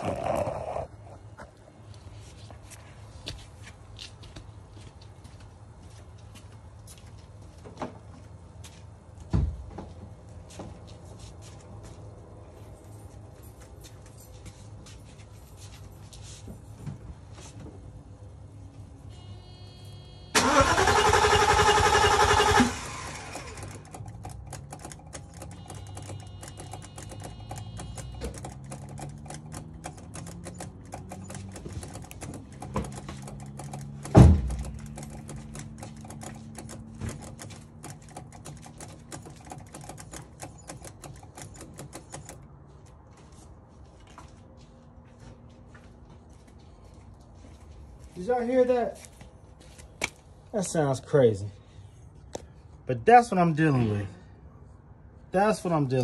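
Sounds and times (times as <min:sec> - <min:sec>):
engine starter cranking: 0:20.3 - 0:42.4.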